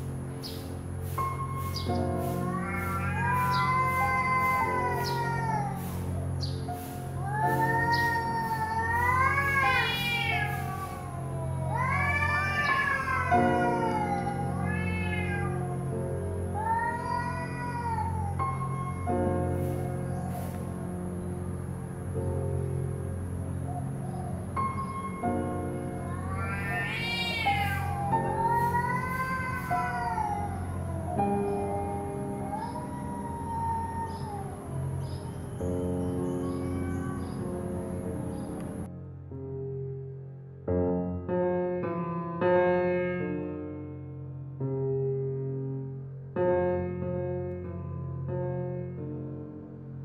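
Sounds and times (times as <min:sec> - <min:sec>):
soft background music: 0:00.0 - 0:40.0
cats yowling: 0:01.6 - 0:22.0, 0:23.5 - 0:38.9.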